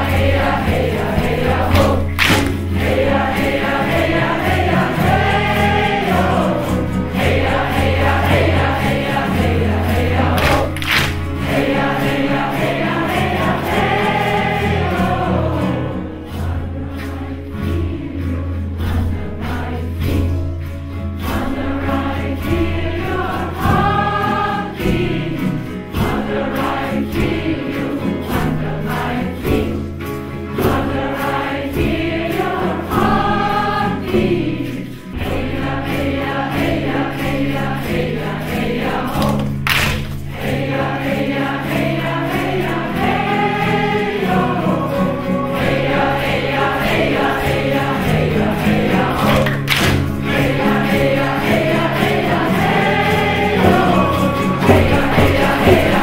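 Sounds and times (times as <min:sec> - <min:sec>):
group chanting in unison: 0:00.0 - 0:20.4, 0:21.2 - 0:29.9, 0:30.6 - 0:56.0
frame drum beat: 0:00.0 - 0:20.6, 0:21.2 - 0:56.0.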